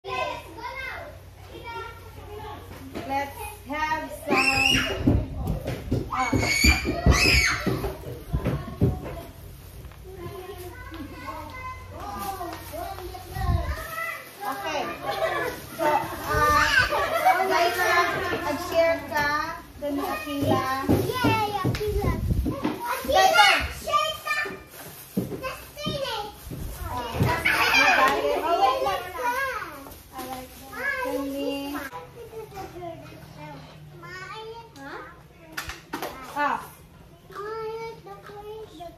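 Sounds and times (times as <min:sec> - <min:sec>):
children and adults chattering: 0:00.0 - 0:38.9.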